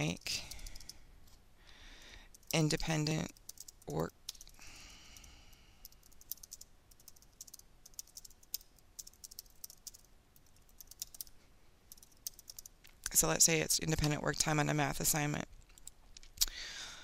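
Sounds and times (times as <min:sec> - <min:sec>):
keyboard typing: 0:00.0 - 0:01.0, 0:02.3 - 0:11.3, 0:11.9 - 0:13.3.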